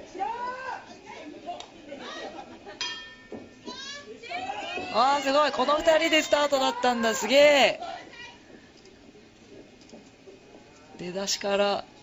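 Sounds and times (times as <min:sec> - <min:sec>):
wrestling ring bell struck: 0:02.8 - 0:03.7.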